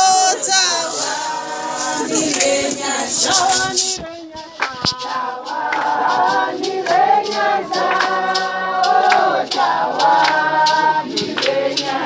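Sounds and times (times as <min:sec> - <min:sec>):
group singing long held notes: 0:00.0 - 0:12.0
sharp hand claps: 0:04.4 - 0:12.0.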